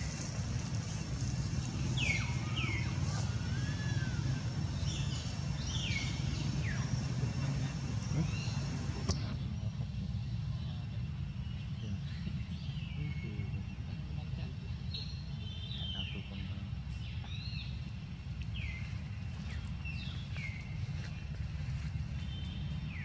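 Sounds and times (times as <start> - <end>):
steady low rumble: 0.0 - 23.0.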